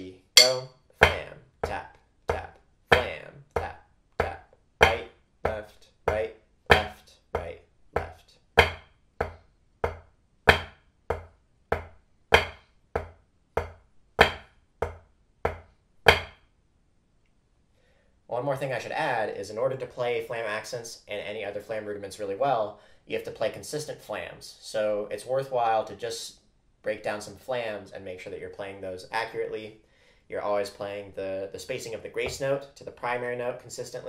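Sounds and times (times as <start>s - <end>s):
drumsticks striking practice pad: 0.4s - 0.7s.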